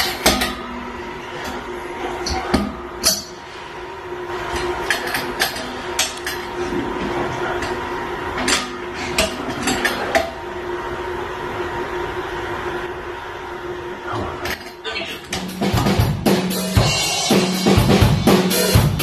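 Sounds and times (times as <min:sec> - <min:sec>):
steady hum: 0:00.0 - 0:19.0.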